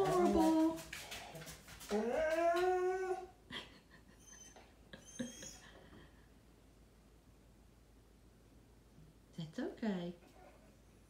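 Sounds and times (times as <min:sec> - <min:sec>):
dog whining howl: 0:01.9 - 0:03.3.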